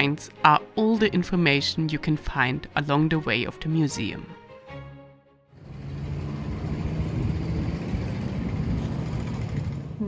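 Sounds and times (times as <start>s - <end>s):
low mechanical rumble: 5.6s - 10.0s.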